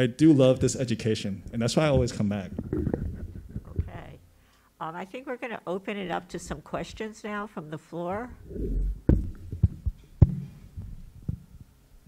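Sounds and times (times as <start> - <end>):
microphone handling thumps: 1.7 - 4.1, 8.3 - 11.7.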